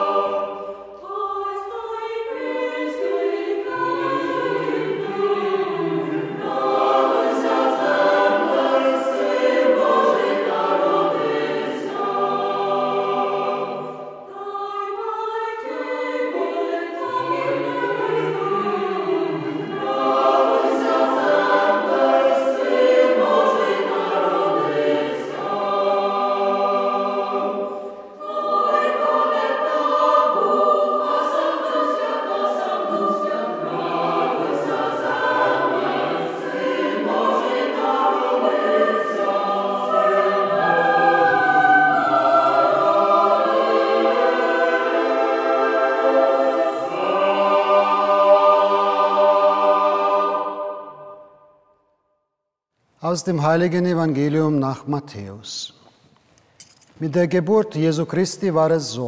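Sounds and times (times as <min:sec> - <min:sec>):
choir singing a carol: 0:00.0 - 0:51.9.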